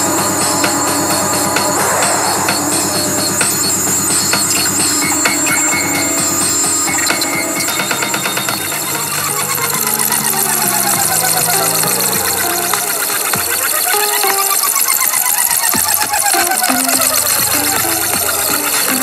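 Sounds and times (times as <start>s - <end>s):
electronic drum beat: 0.0s - 19.0s
gliding synth tones: 0.0s - 19.0s
synth bass line: 0.0s - 19.0s.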